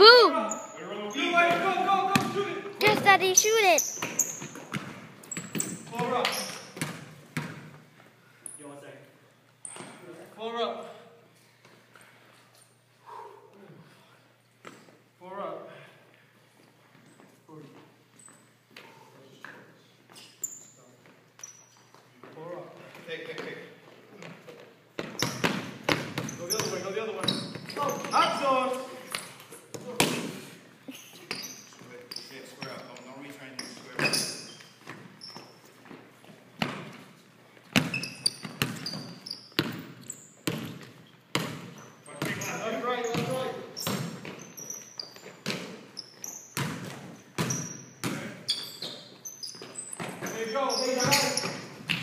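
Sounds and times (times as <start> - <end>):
basketball bouncing on hardwood floor: 4.0 - 6.1, 6.8 - 7.7, 37.8 - 42.5, 43.1 - 44.4, 46.6 - 48.3.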